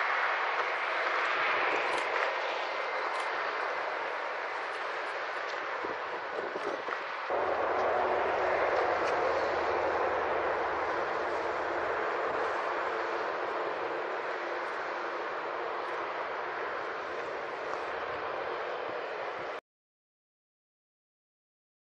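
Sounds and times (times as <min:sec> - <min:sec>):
jet engines rushing: 0:00.0 - 0:19.6.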